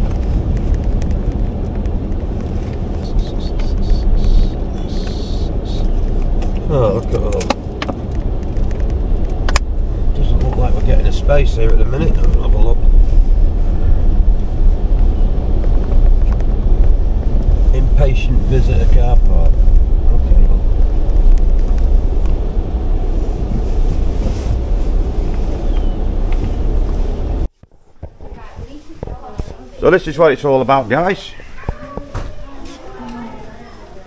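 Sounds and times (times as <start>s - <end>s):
engine and tyre rumble: 0.0s - 34.0s
low voices: 3.0s - 5.9s, 30.5s - 34.0s.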